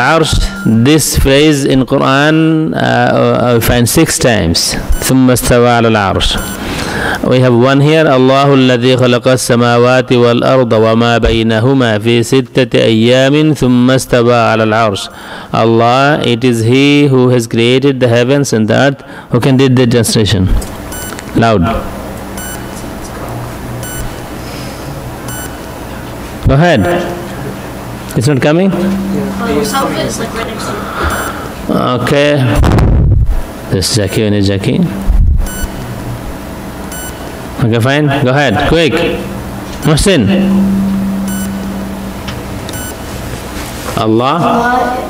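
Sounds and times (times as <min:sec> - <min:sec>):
steady low hum: 0:00.0 - 0:17.5, 0:18.3 - 0:45.0
faint low hum: 0:24.9 - 0:43.2.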